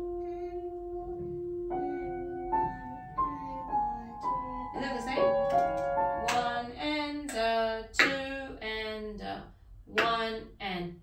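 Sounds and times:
grand piano slow melody: 0.0 - 6.8
woman singing: 1.0 - 10.5.

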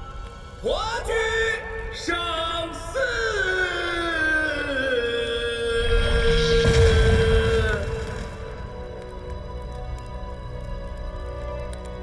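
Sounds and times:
dramatic background music: 0.0 - 12.0
deep low swell: 5.6 - 11.4.

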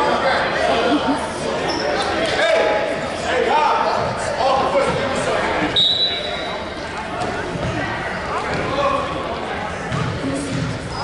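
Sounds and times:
indistinct voices echoing in a hall: 0.0 - 11.0.

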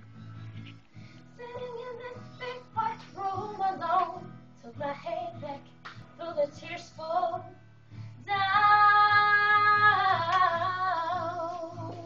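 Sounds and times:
girl singing slow song: 1.2 - 12.0.

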